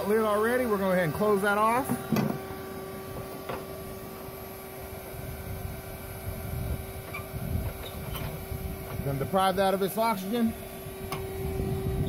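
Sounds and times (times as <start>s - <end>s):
electric suction fan humming: 0.0s - 12.0s.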